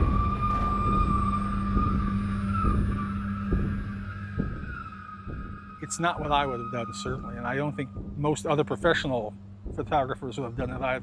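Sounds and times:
low sustained hum: 0.0 - 11.0
thin wavering high tone: 0.0 - 11.0.

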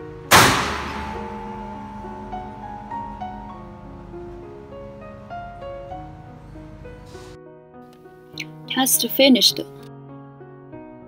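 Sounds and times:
loud mechanical bang: 0.0 - 7.4
background music: 0.0 - 11.0.

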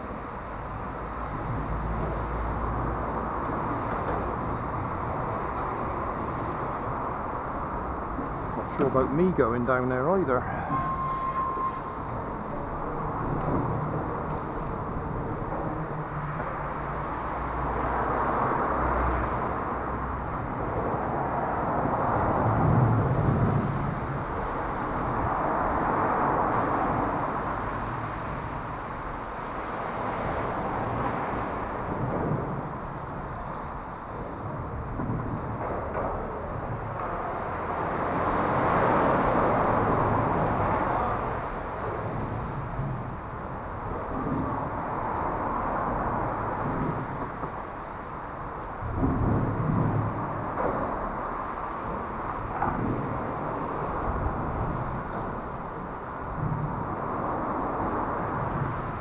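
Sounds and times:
traffic passing overhead: 0.0 - 59.0
low thuds: 39.7 - 59.0.

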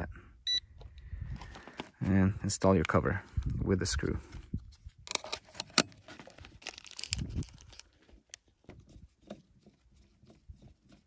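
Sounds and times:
plastic clicks and rustles: 5.0 - 11.0.

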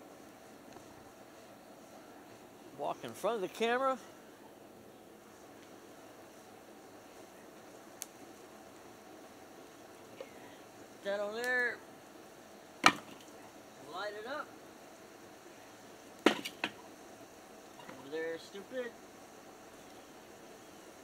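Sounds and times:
logs knocking into fire bowl: 12.8 - 13.4, 16.2 - 16.8.

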